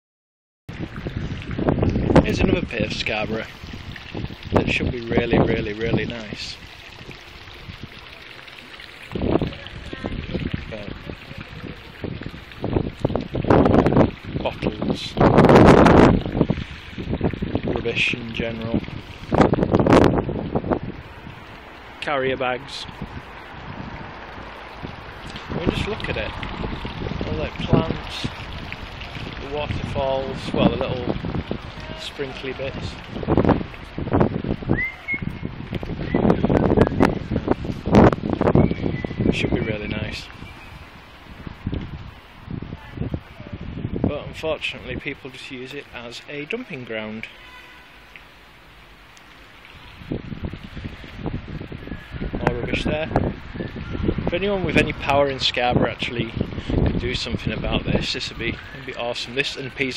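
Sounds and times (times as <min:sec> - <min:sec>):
wind buffeting microphone: 0:00.7 - 0:46.7, 0:49.0 - 0:59.9
thin whistle: 0:34.7 - 0:35.4
outdoor background hiss: 0:36.7 - 0:59.9.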